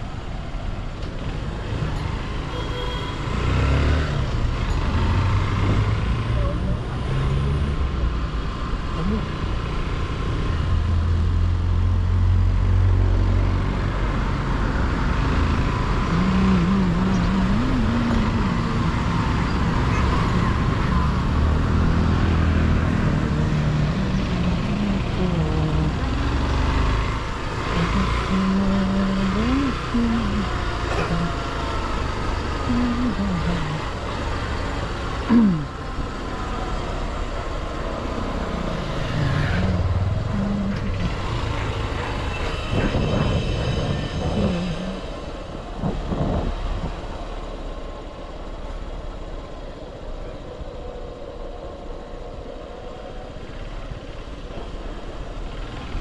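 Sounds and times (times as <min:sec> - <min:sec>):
wind and road noise: 0:00.0 - 0:56.0.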